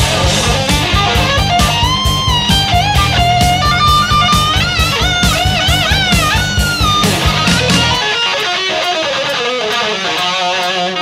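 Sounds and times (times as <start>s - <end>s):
bass guitar: 0.0s - 10.2s
distorted electric guitar lead: 0.0s - 11.0s
drums: 0.0s - 11.0s.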